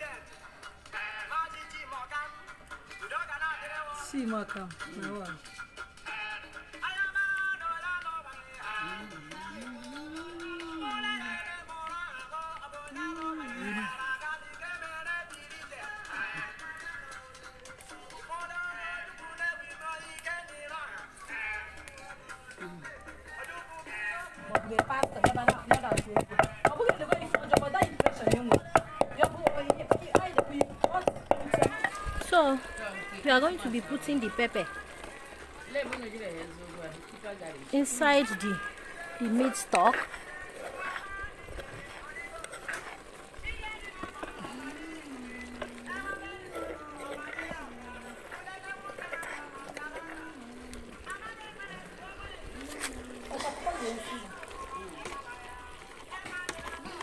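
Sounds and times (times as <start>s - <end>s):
music with singing: 0.0s - 57.0s
wooden pestle pounding in mortar: 24.4s - 32.3s.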